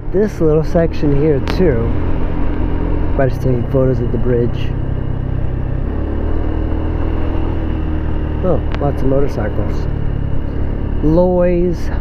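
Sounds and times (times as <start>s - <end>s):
wind and road noise: 0.0s - 12.0s
scooter engine running: 0.7s - 12.0s.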